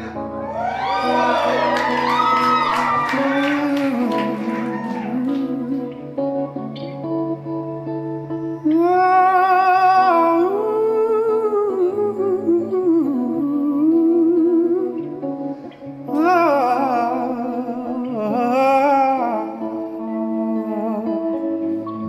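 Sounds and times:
bass guitar: 0.0 - 18.4
man singing with vibrato: 2.9 - 6.7, 8.6 - 15.4, 16.0 - 22.0.

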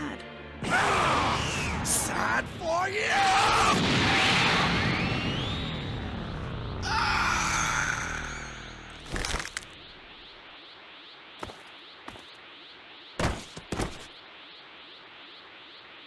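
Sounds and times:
whoosh with rising whine: 14.1 - 16.0.

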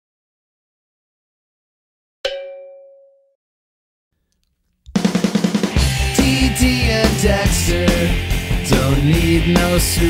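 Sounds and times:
bell strike ringing: 2.3 - 3.3.

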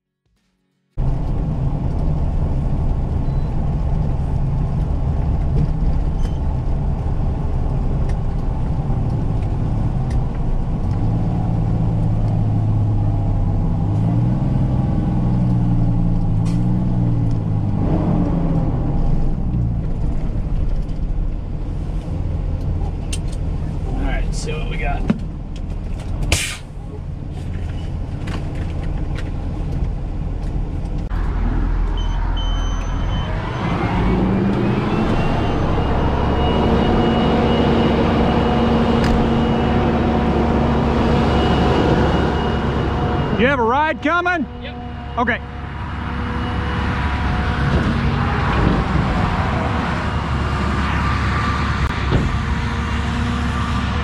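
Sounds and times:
diesel truck engine rumble: 0.9 - 54.0.

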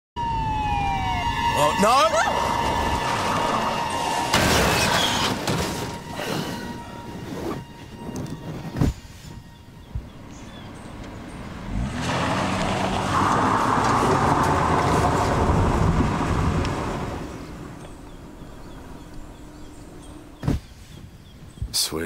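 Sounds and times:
tyres on gravel: 2.0 - 9.4
car engine revving: 10.1 - 20.4.

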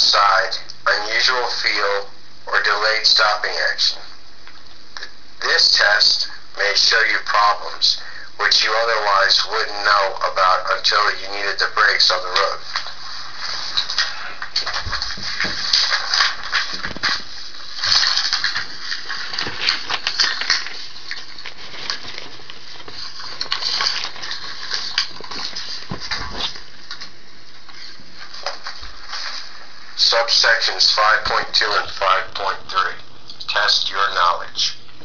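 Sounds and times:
paper pages rustling: 11.8 - 30.3.

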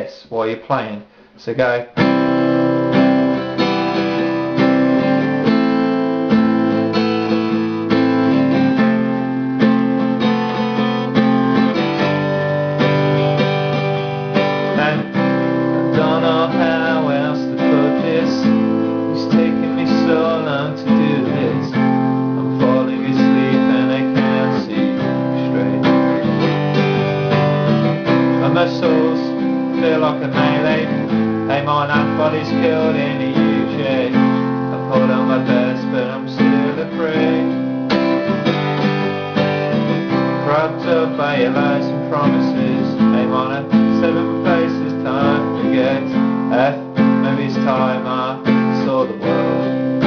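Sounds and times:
acoustic guitar strumming: 1.1 - 50.0.

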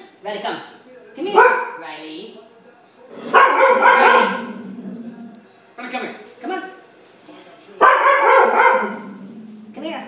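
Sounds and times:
dog barking loudly: 1.2 - 1.8, 3.3 - 4.6, 7.8 - 9.2.

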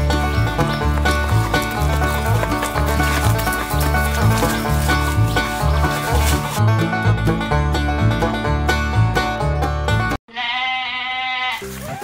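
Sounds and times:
music: 0.0 - 10.2, 11.5 - 12.0.

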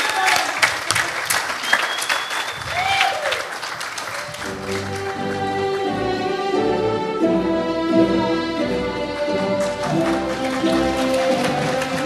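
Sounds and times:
audience applauding: 0.0 - 5.6, 9.1 - 12.0
music: 4.3 - 12.0.

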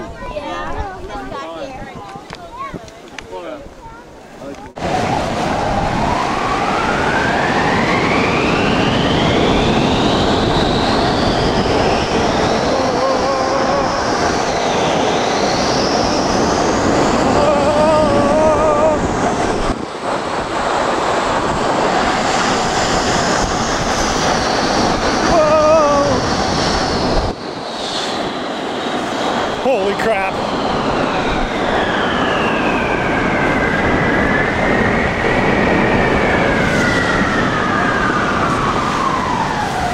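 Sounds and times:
wind buffeting microphone: 0.0 - 39.9
snow tube scraping over snow: 21.3 - 28.4.

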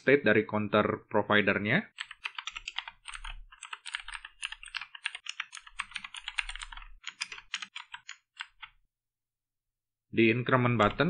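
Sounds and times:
typing on computer keyboard: 2.0 - 8.8.

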